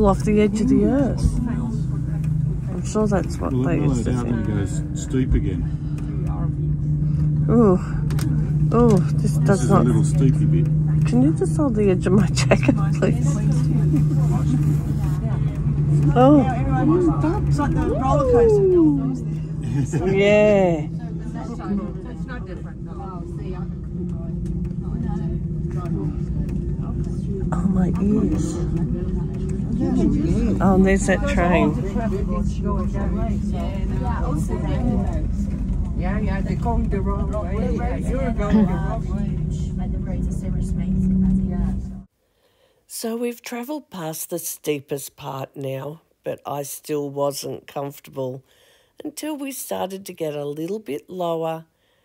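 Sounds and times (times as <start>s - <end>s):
faint passenger voices: 0.0s - 42.1s
low hum and rumble of cabin: 0.0s - 42.2s
faint chatter and laughter: 12.1s - 42.1s
woman saying ooh: 17.9s - 19.3s.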